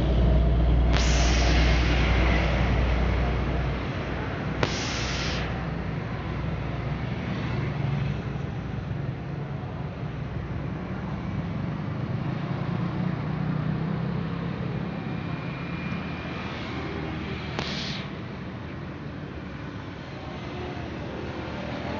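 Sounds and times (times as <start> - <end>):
cars and motorcycles passing: 0.0 - 21.9.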